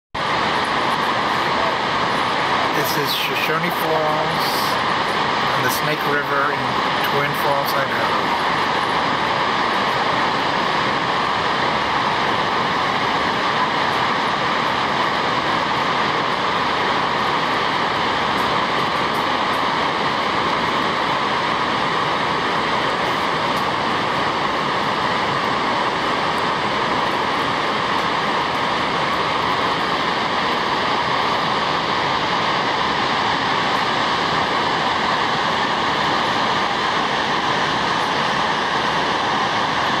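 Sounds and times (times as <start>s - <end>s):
waterfall rushing: 0.2s - 40.0s.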